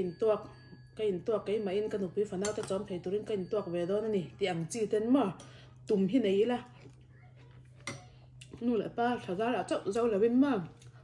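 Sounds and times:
woman talking: 0.0 - 6.8, 8.5 - 10.8.

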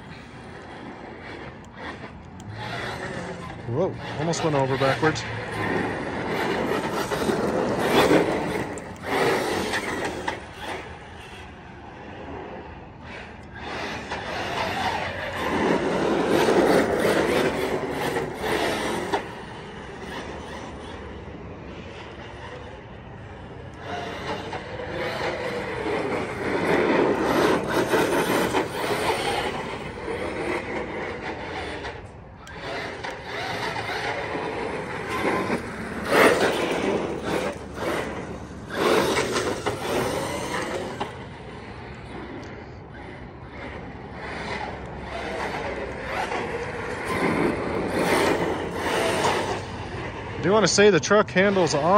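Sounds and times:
electric motor whining: 0.0 - 12.1, 12.9 - 51.9
tyres rolling on asphalt: 0.0 - 51.9.

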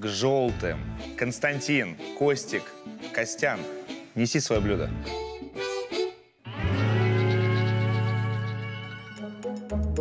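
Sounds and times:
long held music tone: 2.0 - 10.0.

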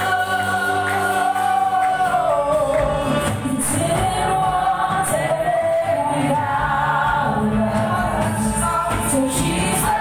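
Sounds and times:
band with guitar: 0.0 - 10.0
choir singing: 0.0 - 10.0
woman singing lead: 0.0 - 10.0.

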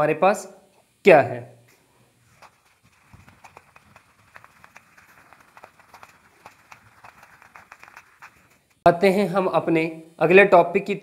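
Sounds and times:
eraser wiping whiteboard: 2.3 - 8.8.

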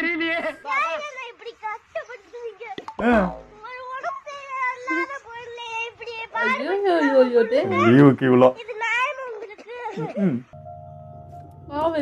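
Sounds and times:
boy talking in whining voice: 3.5 - 10.1.

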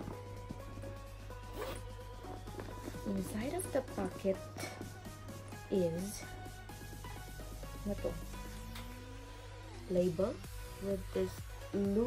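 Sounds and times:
background music: 0.0 - 12.0
zipper being pulled open: 0.8 - 4.1.

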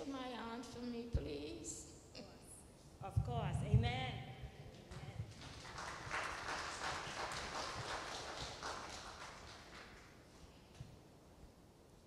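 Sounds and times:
crowd clapping: 4.9 - 10.5.

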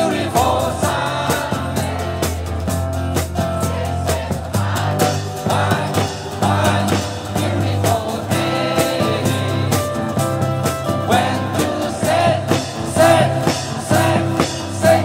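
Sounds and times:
bass guitar: 0.0 - 15.0
electric guitars: 0.0 - 15.0
live rock and roll band playing: 0.0 - 15.0
steady drum beat: 0.0 - 15.0.

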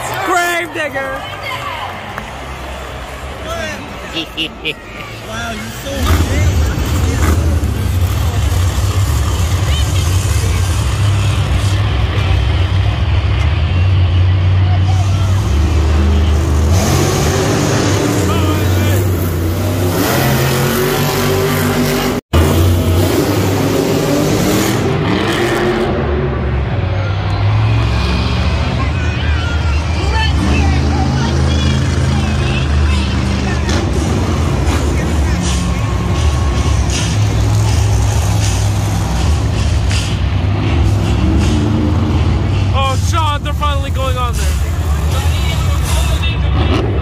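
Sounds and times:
monster truck engines rumbling: 0.0 - 47.0.

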